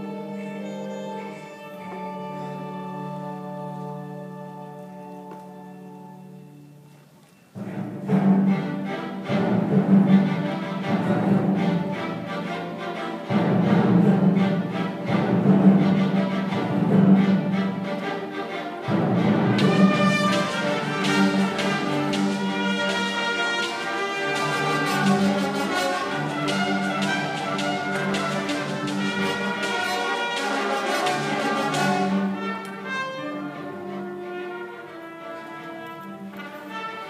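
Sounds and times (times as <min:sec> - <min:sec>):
orchestra playing: 0:00.0 - 0:37.0.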